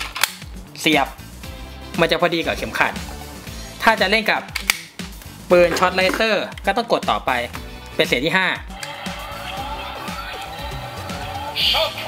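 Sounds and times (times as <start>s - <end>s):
sharp plastic click: 0.0s - 0.5s, 4.6s - 5.0s.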